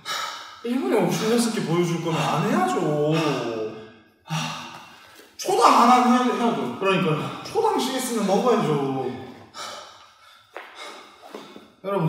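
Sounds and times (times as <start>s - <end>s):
man speaking: 0.6s - 4.7s, 5.4s - 9.4s.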